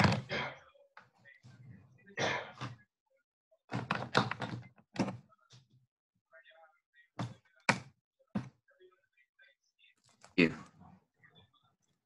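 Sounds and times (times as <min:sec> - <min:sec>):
thumps and knocks: 0:03.7 - 0:05.2.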